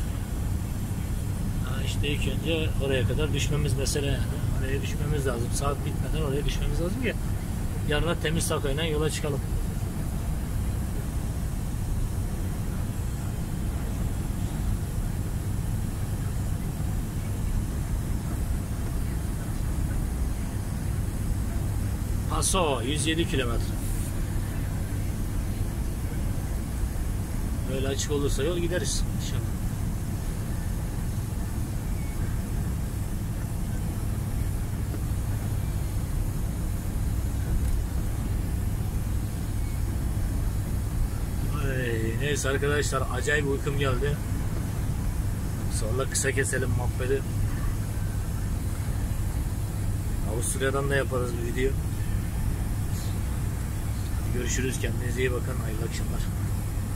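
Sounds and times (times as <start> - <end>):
diesel engine rumble: 0.0 - 56.9.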